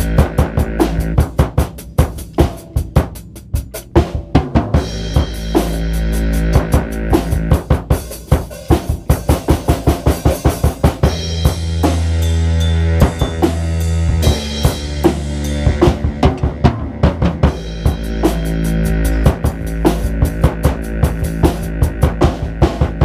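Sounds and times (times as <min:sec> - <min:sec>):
bass notes and chords: 0:00.0 - 0:23.0
drum kit playing: 0:00.0 - 0:23.0.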